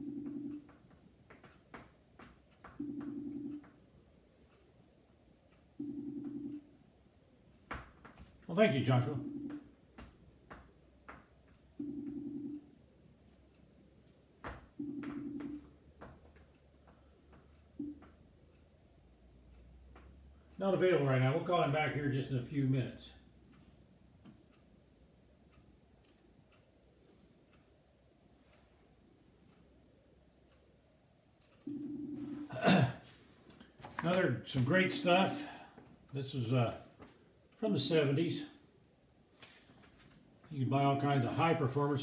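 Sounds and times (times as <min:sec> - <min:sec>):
phone ringing tone: 0:00.0 - 0:00.8, 0:02.8 - 0:03.8, 0:05.8 - 0:06.7, 0:08.9 - 0:09.8, 0:11.8 - 0:12.8, 0:14.8 - 0:15.8, 0:31.6 - 0:32.6
man clearing his throat: 0:32.5 - 0:33.1.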